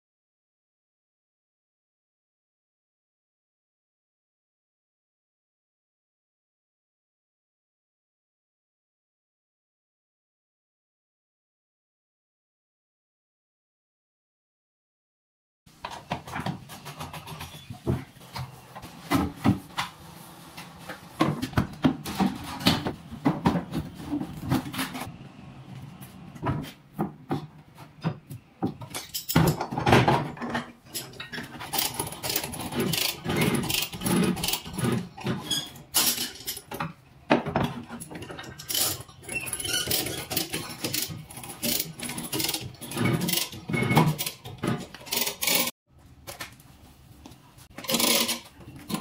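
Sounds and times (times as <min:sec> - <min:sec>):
steel bar and chain on bumper: 0:30.9 - 0:36.7, 0:38.1 - 0:45.7, 0:47.7 - 0:49.0.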